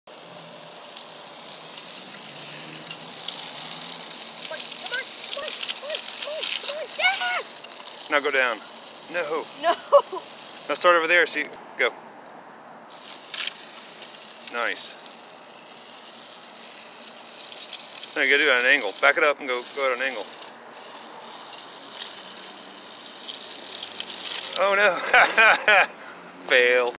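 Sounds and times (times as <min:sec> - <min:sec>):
toy car rolling with high hiss: 0:00.1 - 0:11.6, 0:12.9 - 0:26.9.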